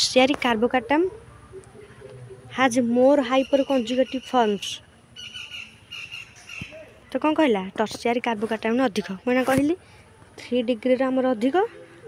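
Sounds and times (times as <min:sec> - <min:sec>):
high-pitched bird calls: 0:00.7 - 0:07.2.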